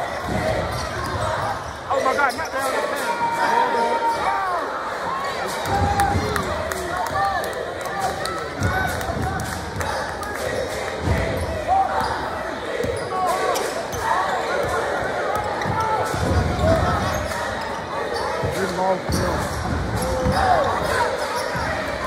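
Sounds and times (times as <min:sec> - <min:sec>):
crowd chatter: 0:00.0 - 0:22.0
sneaker squeaks: 0:00.3 - 0:04.3, 0:11.3 - 0:22.0.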